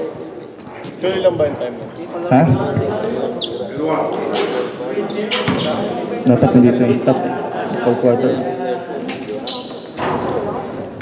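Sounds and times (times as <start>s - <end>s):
players' voices: 0.0s - 11.0s
sneakers squeaking: 2.9s - 6.1s, 8.1s - 11.0s.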